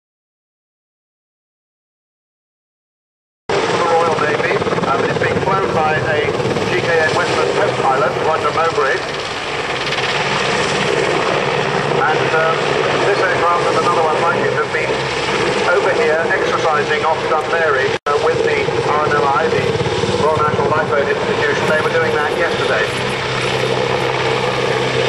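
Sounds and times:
helicopter engine and rotor drone: 3.5 - 25.0
commentator over public address: 3.6 - 9.4, 11.8 - 23.9.

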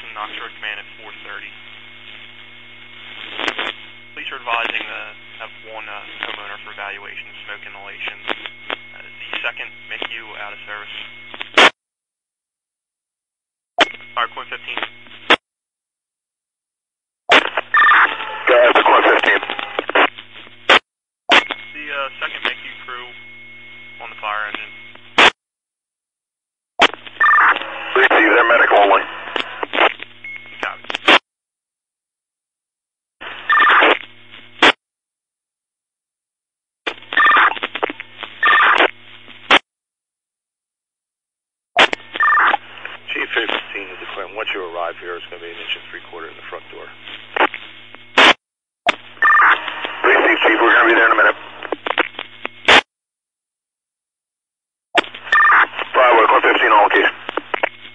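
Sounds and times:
radio squelch burst: 0.0 - 11.7, 17.3 - 25.3, 26.8 - 30.0, 41.8 - 52.8, 55.0 - 57.9
radio transmissions: 0.0 - 11.7, 13.8 - 15.4, 17.3 - 25.3, 26.8 - 31.2, 33.2 - 34.8, 36.9 - 39.6, 41.8 - 52.8, 55.0 - 57.9
steady hum: 0.0 - 11.7, 17.3 - 25.3, 26.8 - 31.1, 48.9 - 52.7.

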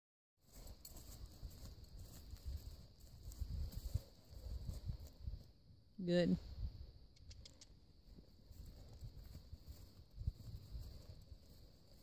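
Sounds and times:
horse hoofbeats on grass: 0.4 - 5.5, 8.0 - 12.0.

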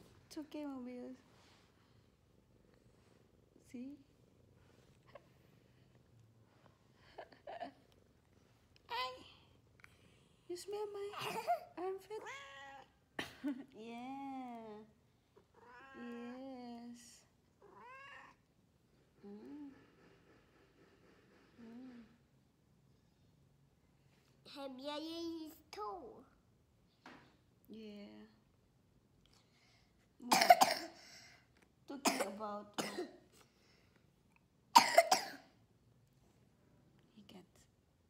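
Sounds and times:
cat meowing: 17.6 - 18.4.

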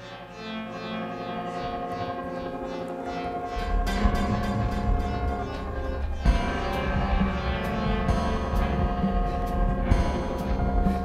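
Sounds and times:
held synth tones: 0.0 - 11.0
deep bass: 3.3 - 11.0.

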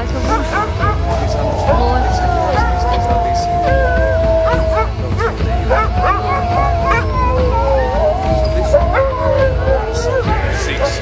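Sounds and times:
dogs yipping and whining: 0.0 - 11.0
sled dogs howling: 0.0 - 11.0.

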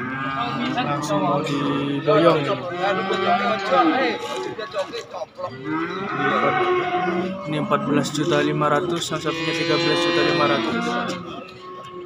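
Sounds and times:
cattle mooing: 0.0 - 4.6, 5.4 - 12.0.

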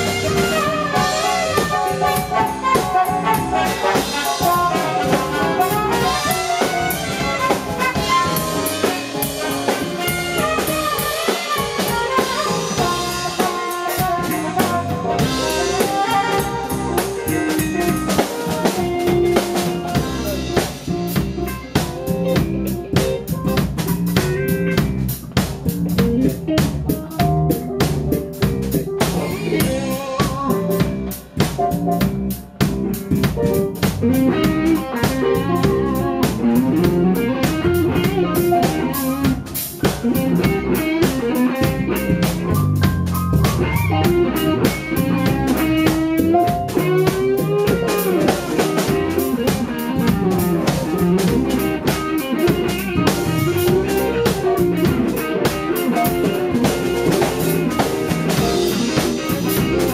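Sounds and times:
saxophone melody: 0.0 - 25.0, 28.8 - 32.1, 33.4 - 42.3, 43.6 - 59.9
drum kit: 0.0 - 59.9
jazz band playing: 0.0 - 59.9.

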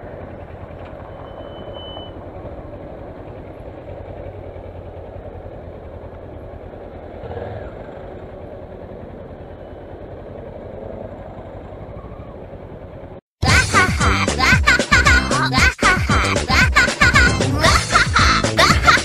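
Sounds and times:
motorcycle engine rumbling: 0.0 - 13.6.

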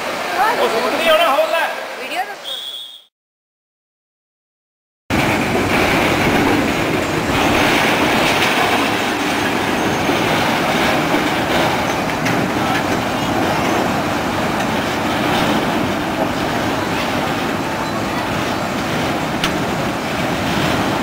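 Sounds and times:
steel wheels rolling on rail: 5.1 - 21.0.

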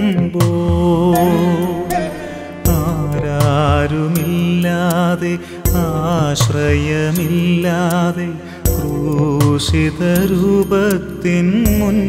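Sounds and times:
devotional song: 0.0 - 12.0.

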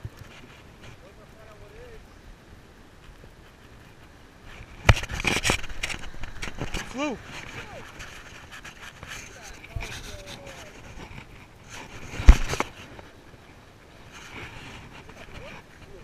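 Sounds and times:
surf: 0.0 - 16.0
wind: 0.0 - 16.0.

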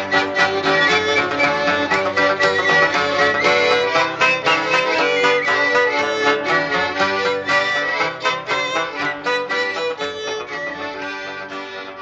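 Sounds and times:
instrumental folk music: 0.0 - 12.0
plucked string accompaniment: 0.0 - 12.0.

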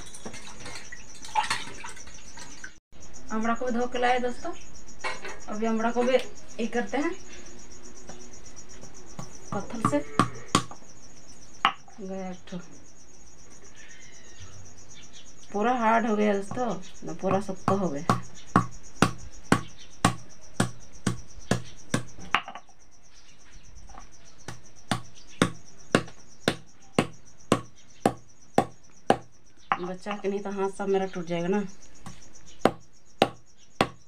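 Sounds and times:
high insect chirping: 0.0 - 34.0
stone knocking on fruit: 9.2 - 10.8, 16.5 - 22.7, 24.5 - 29.9, 32.0 - 34.0.

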